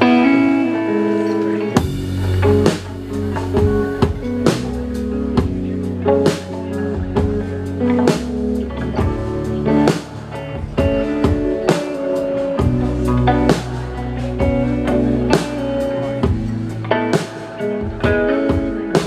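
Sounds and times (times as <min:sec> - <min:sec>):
electric guitars ringing: 0:00.0 - 0:19.0
drum kit hits: 0:01.8 - 0:08.4.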